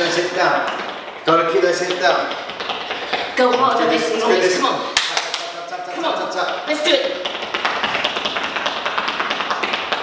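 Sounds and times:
trainers tapping on hard floor: 0:00.0 - 0:10.0.

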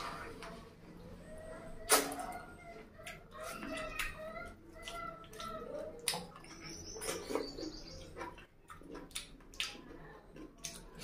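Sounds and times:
wet sucking and chewing: 0:03.0 - 0:11.0.

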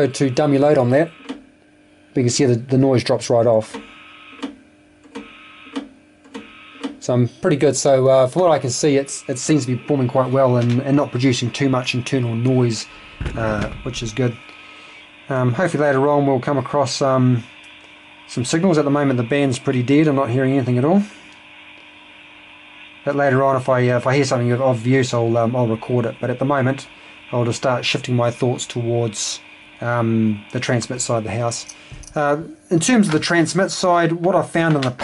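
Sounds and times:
thin steady tones: 0:00.0 - 0:01.3, 0:06.5 - 0:34.2
faint radio receiver hiss: 0:00.0 - 0:01.4, 0:05.2 - 0:35.0
faint steady hum: 0:00.0 - 0:35.0.

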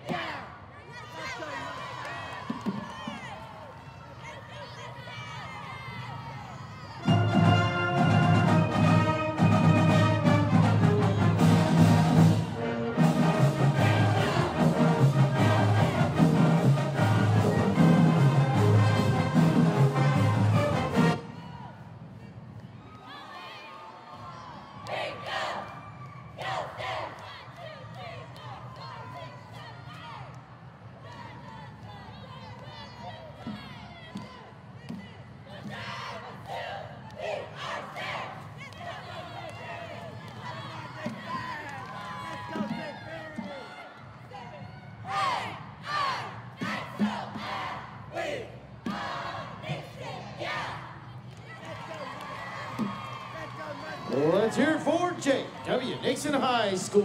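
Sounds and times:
crowd cheering: 0:00.0 - 0:21.8, 0:35.6 - 0:57.0
cheer squad shouting chant: 0:00.0 - 0:22.4, 0:23.0 - 0:57.0.

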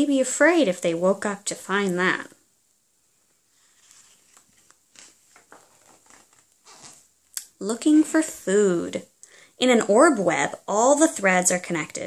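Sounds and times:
paper page rustling: 0:03.3 - 0:07.1.

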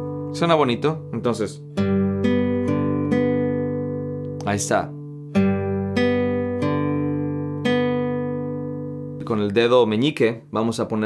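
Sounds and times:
classical guitar fingerpicked notes: 0:00.0 - 0:09.6.

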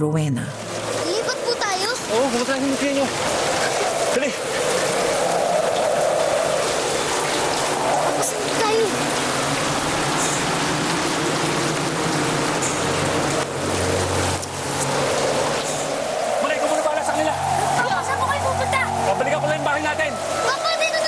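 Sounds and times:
heavy rain pouring: 0:00.5 - 0:21.0.

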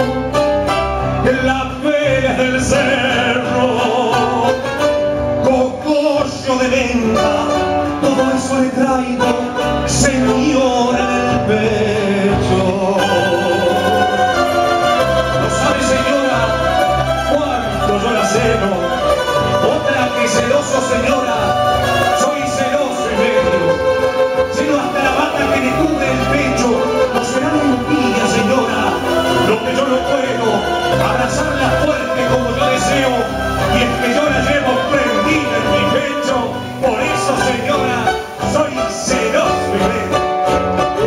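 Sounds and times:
live band playing folk music: 0:00.0 - 0:41.0
stringed instruments melody: 0:00.0 - 0:41.0.

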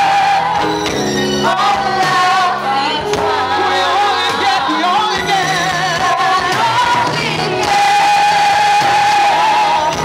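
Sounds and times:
backing singers: 0:00.0 - 0:10.0
woman singing gospel lead: 0:01.4 - 0:10.0.

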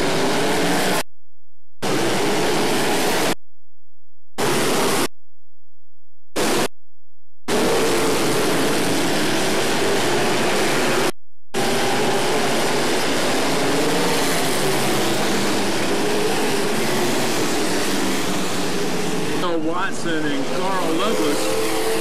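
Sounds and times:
race car engines droning: 0:00.0 - 0:01.0, 0:01.8 - 0:03.4, 0:04.4 - 0:05.1, 0:07.5 - 0:22.0.

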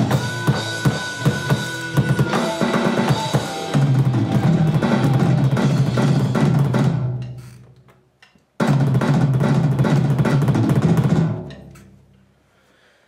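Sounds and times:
heavy rock backing music: 0:00.0 - 0:07.2
electronic drum kit played hard: 0:00.0 - 0:07.4, 0:08.6 - 0:11.8.

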